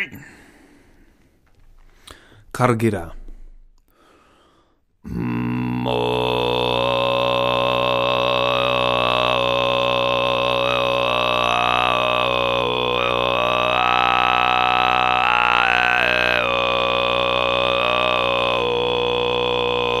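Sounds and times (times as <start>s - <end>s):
throat singing drone: 5.0s - 20.0s.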